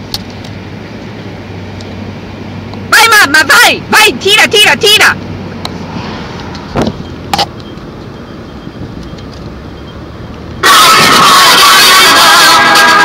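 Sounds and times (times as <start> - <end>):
engine and tyres on road: 0.0 - 13.0.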